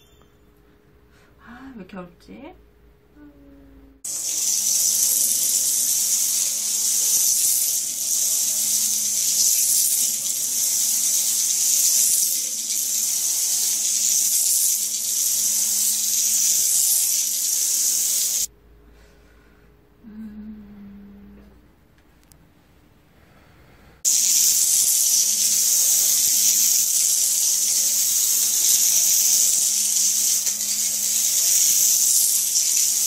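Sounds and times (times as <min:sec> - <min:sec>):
loud steady hiss: 0:04.0 - 0:18.5, 0:24.0 - 0:33.0.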